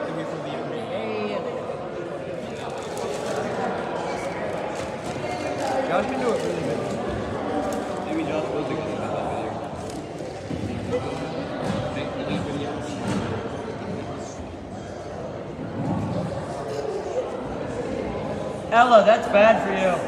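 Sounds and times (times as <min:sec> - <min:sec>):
indistinct chatter in a gymnasium: 0:00.0 - 0:20.0.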